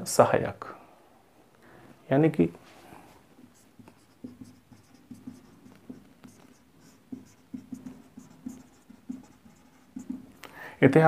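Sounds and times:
marker pen writing on whiteboard: 3.3 - 10.4.

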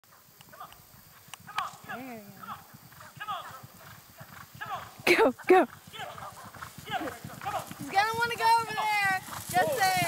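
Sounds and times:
hoofbeats on grass: 0.2 - 10.0
sharp hoof clicks: 0.4 - 10.0.

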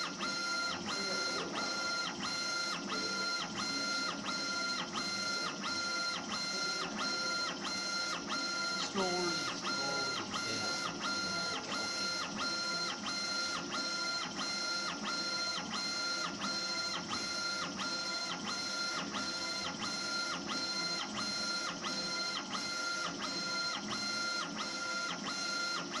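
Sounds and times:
gantry motors whining: 0.0 - 25.9.

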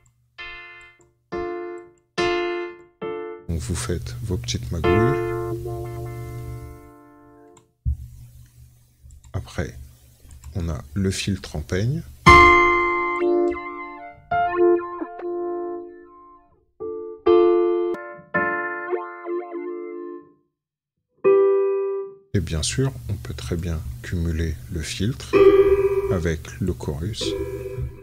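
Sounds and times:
filtered synthesizer chord: 0.4 - 7.6, 12.3 - 20.4, 25.4 - 26.4, 27.2 - 28.0
low synthesizer note: 3.5 - 7.5, 12.3 - 15.9, 25.3 - 26.4, 27.2 - 28.0.

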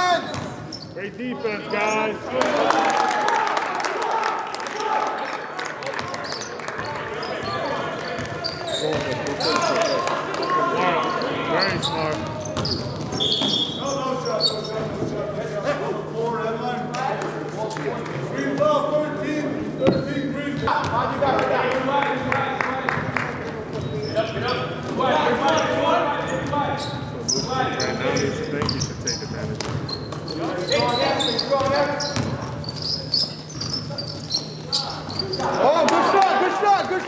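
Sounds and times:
basketball bouncing on court: 0.3 - 0.7, 6.0 - 9.7, 29.6 - 30.3, 31.6 - 32.8
people talking and calling: 4.6 - 37.0
referee's whistle: 12.6 - 14.6.

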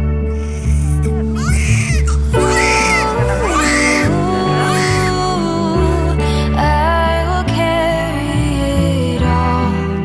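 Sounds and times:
background music: 0.0 - 10.0
baby crying: 0.4 - 5.4.

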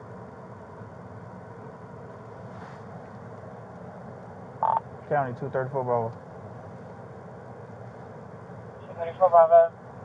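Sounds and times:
low hum inside car: 0.0 - 10.0
police radio beep: 4.6 - 4.8
radio call voice: 8.8 - 9.7.

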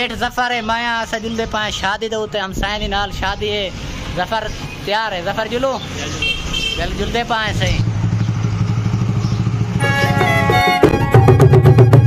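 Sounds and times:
motorcycle engine idling: 7.7 - 12.0
music: 9.8 - 12.0.

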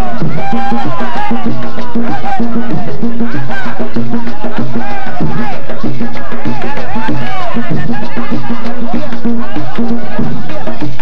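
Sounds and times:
bending melody line: 0.0 - 11.0
drums steady beat: 0.0 - 11.0.

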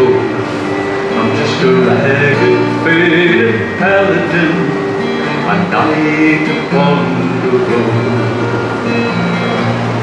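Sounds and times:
person singing folk ballad: 0.0 - 9.6
acoustic guitar chords: 0.0 - 10.0.

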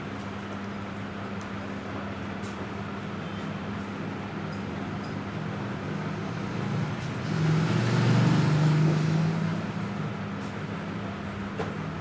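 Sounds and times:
vehicle engine passing by: 6.1 - 10.0.

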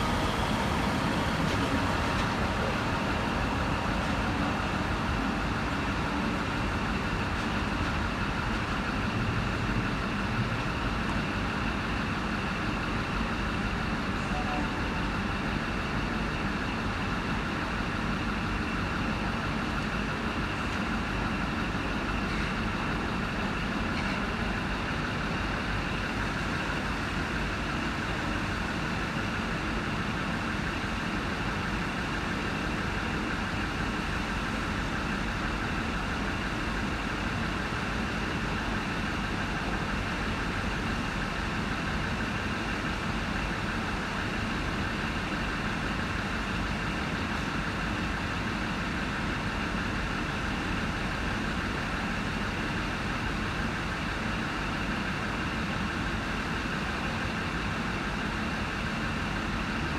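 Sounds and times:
trains idling: 0.0 - 59.9.

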